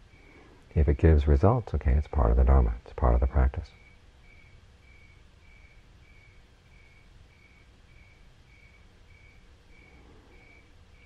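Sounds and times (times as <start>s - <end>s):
faint steady hum: 0.0s - 11.0s
cricket chirping: 3.0s - 11.0s.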